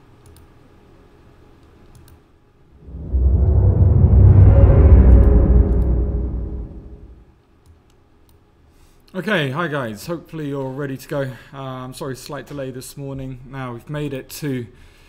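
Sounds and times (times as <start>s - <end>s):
deep rumbling whoosh: 2.8s - 7.2s.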